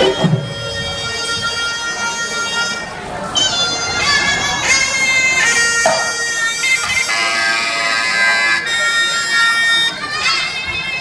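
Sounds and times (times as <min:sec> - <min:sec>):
shrill oboe melody: 0:00.0 - 0:11.0.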